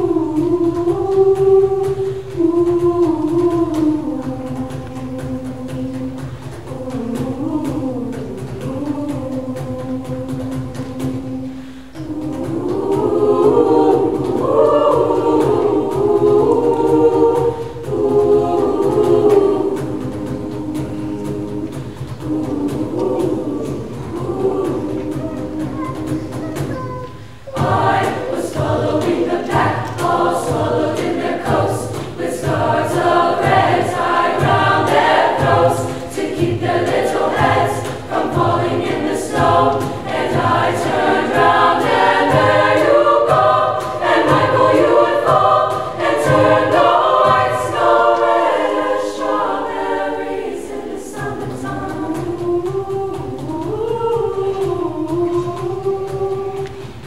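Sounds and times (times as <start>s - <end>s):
low cajon beat: 0.0s - 48.8s
girls' choir singing: 0.0s - 57.0s.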